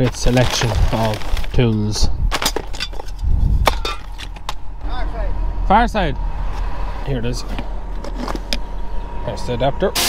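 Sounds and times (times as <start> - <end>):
metal tools clinking: 2.4 - 4.4.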